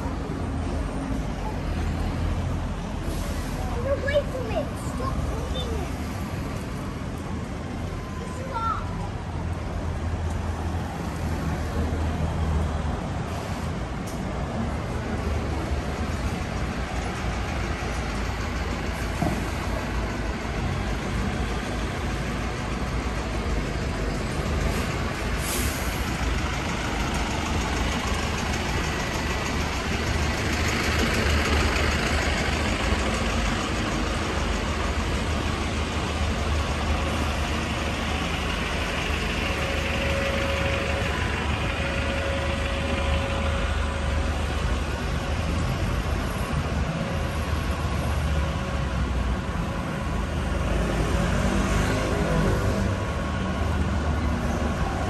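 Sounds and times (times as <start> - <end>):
bus engine rumbling: 0.0 - 55.0
street traffic: 0.0 - 55.0.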